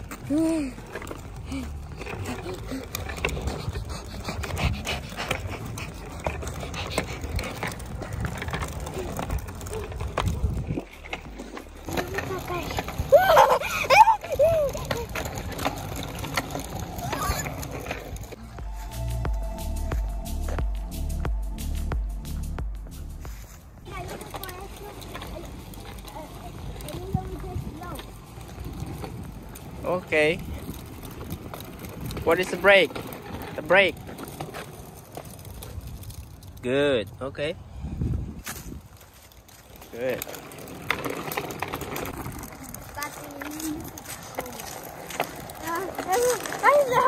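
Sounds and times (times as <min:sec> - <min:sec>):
bicycle rolling on concrete: 0:00.0 - 0:47.0
young child talking: 0:11.9 - 0:15.2, 0:17.0 - 0:17.7, 0:23.9 - 0:28.2, 0:42.5 - 0:44.8, 0:45.5 - 0:47.0
footsteps walking: 0:17.4 - 0:24.4, 0:42.8 - 0:46.9.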